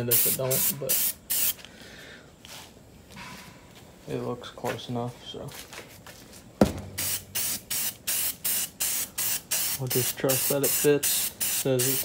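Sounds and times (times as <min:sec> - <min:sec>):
spray paint can hissing: 0:00.0 - 0:01.6, 0:07.0 - 0:12.0
sharp knock: 0:06.6 - 0:07.2.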